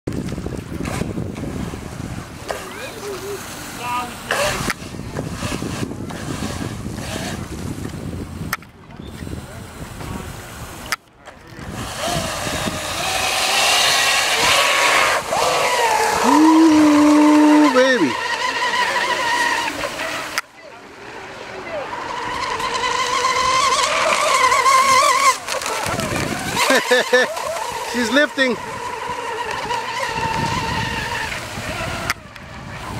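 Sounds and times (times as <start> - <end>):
wind buffeting microphone: 0.1 - 20.4, 21.0 - 32.9
model boat motor running: 0.1 - 32.9
hull throwing spray: 11.6 - 32.9.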